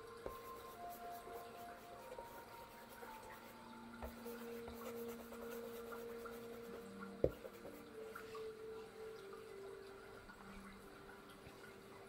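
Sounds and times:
soft ambient music: 0:00.0 - 0:12.0
sponge dabbing paint on canvas: 0:00.2 - 0:08.4.

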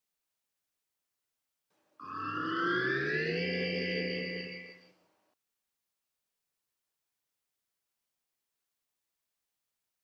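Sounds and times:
rising synthesized tone: 0:02.0 - 0:04.9.

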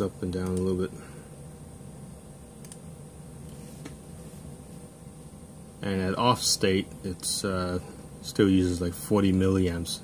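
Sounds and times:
low steady room noise: 0:00.0 - 0:10.0.

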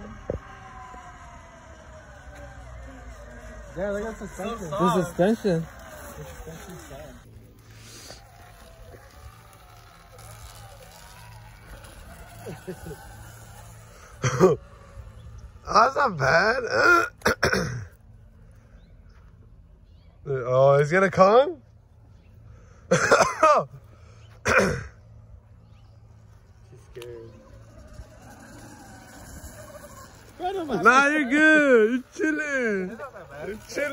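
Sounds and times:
faint voices: 0:00.0 - 0:17.1, 0:26.0 - 0:33.9
low steady background hum: 0:00.0 - 0:33.9
person coughing: 0:16.7 - 0:17.9, 0:22.9 - 0:23.5, 0:24.4 - 0:25.0.

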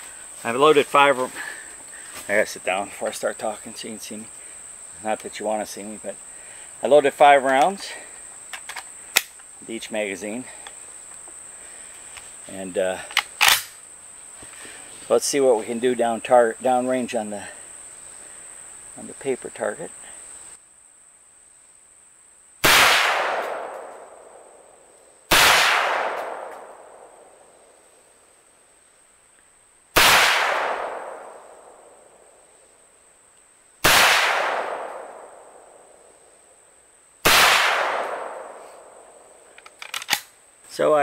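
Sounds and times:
rifle shots with echo: 0:22.6 - 0:24.3, 0:25.3 - 0:27.1, 0:30.0 - 0:31.7, 0:33.8 - 0:35.6, 0:37.2 - 0:39.0.

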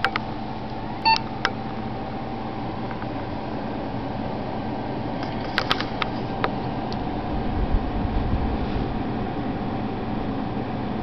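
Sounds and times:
computer fans whirring: 0:00.0 - 0:11.0.

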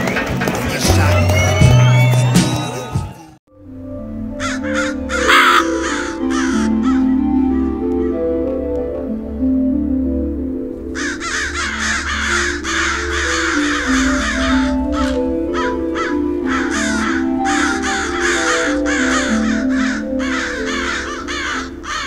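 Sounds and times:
slow moody background music: 0:03.5 - 0:22.0
crows cawing: 0:04.4 - 0:07.1, 0:10.9 - 0:22.0.

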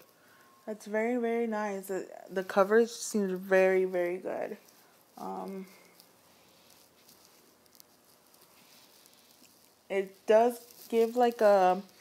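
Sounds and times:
brush bristles on skin: 0:02.3 - 0:12.0.

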